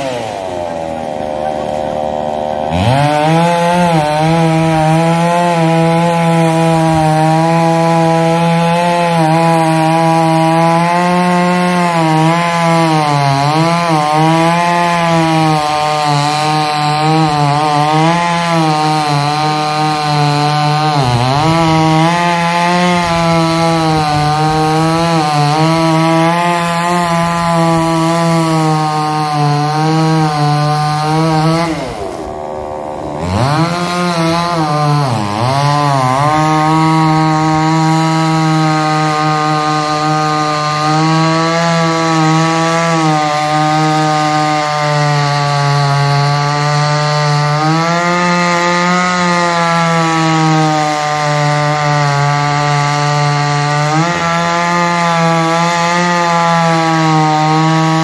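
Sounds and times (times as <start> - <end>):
chainsaw cutting wood: 0.0 - 58.0.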